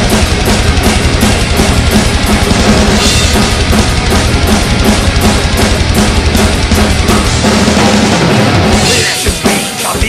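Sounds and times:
drum kit played hard: 0.0s - 10.0s
folk metal band recording: 0.0s - 10.0s.

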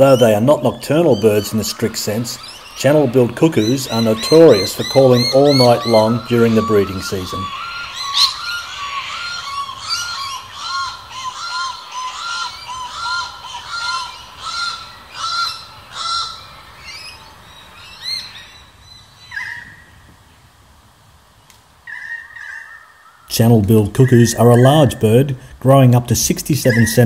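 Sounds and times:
cuckoo calling piercing notes: 0.0s - 18.6s, 21.9s - 25.3s, 26.6s - 27.0s
short high bird calls: 0.0s - 19.9s, 26.6s - 27.0s.

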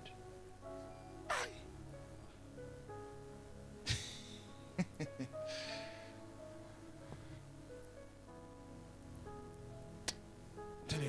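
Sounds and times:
soft music of held chords: 0.0s - 11.0s.

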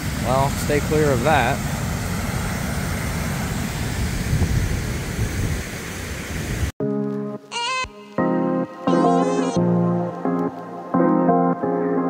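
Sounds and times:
music: 6.8s - 12.0s.

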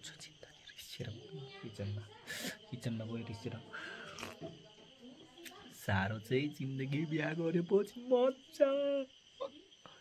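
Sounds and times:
man sipping from metal cup: 4.1s - 4.4s.

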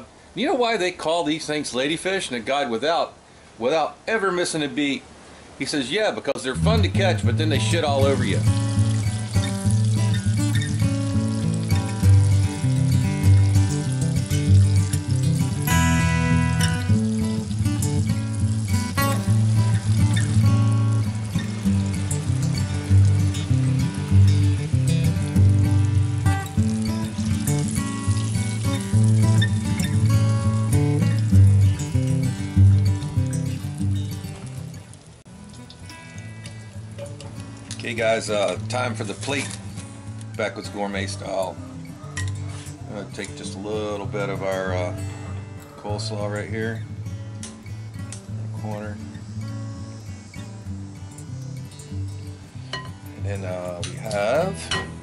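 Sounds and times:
instrumental music with bass line: 6.5s - 40.5s
fish deep-frying in oil: 6.8s - 41.2s, 47.4s - 55.0s.

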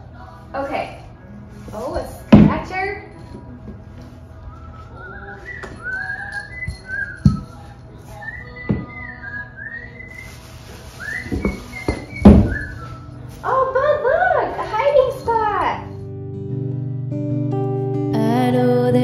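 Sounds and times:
whistled tune: 4.4s - 13.3s.

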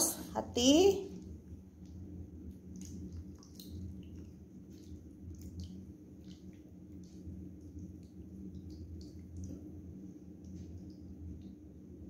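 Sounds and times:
sauce pouring with wet squelches: 1.1s - 12.0s.

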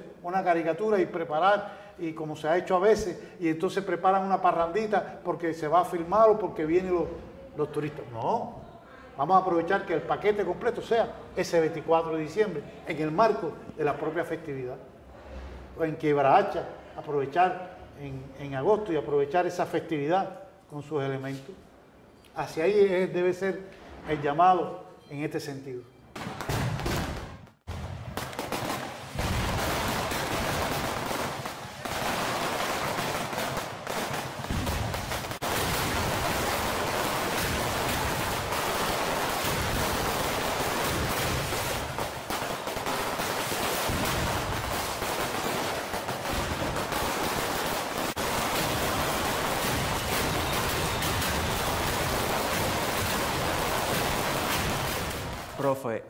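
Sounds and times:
firecracker bangs crackling: 26.2s - 55.6s.

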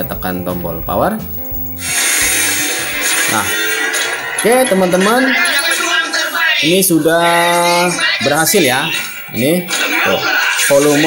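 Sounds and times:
television speaker hiss: 0.0s - 11.0s.

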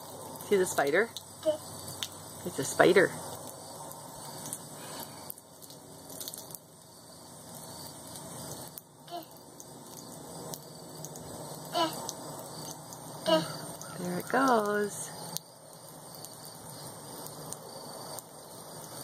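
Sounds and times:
water trickling onto concrete: 0.0s - 19.0s.

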